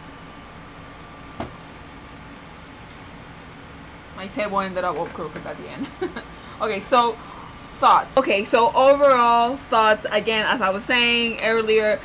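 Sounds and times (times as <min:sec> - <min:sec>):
air-conditioner noise: 0:00.0 - 0:12.0
book knocking against table: 0:01.4 - 0:01.6.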